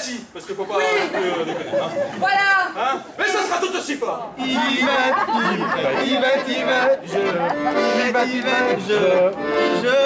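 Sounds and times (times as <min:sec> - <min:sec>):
voices talking in echoing hall: 0:00.0 - 0:08.0.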